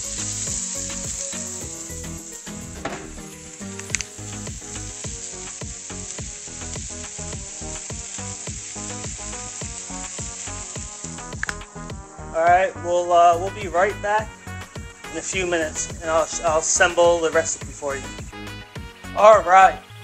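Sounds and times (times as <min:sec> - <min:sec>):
food sizzling in frying pans: 0:00.0 - 0:20.0
sharp ticks: 0:03.6 - 0:11.8.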